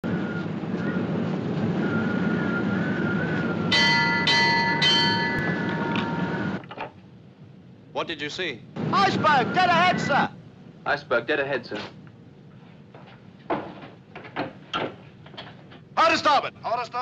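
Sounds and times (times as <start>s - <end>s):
steady rumbling hiss: 0.0s - 17.0s
ship's warning bell ringing: 3.7s - 6.6s.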